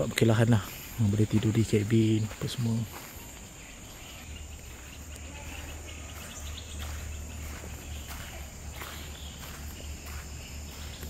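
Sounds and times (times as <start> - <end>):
footsteps on dirt path: 0.0 - 11.0
insects droning: 0.0 - 11.0.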